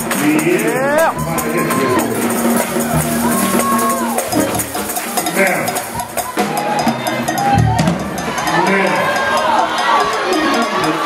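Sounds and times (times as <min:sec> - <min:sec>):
congregation voices: 0:00.0 - 0:11.0
drum kit and percussion: 0:00.0 - 0:11.0
gospel band playing: 0:00.0 - 0:11.0.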